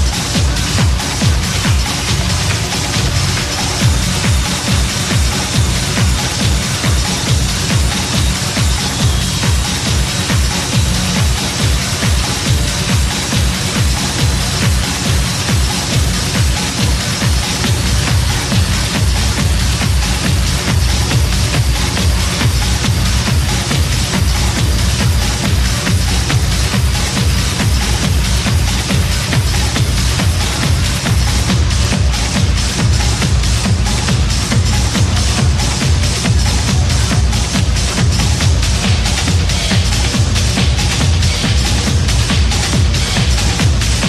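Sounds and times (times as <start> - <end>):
electronic dance music: 0.0 - 44.0.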